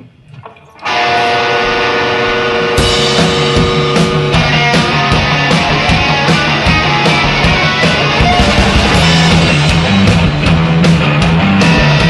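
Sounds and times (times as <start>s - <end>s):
loud ringing guitar chord: 0.8s - 10.0s
rock band playing: 0.8s - 12.0s
drum hit: 0.9s - 12.0s.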